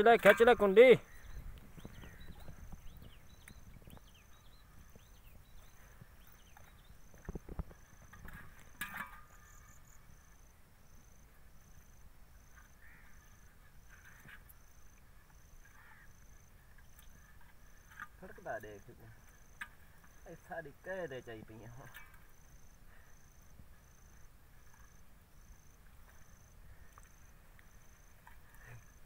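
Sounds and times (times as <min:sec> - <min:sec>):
insect chirping: 0:00.0 - 0:29.0
faint bird chirps: 0:00.7 - 0:08.4, 0:09.1 - 0:10.5.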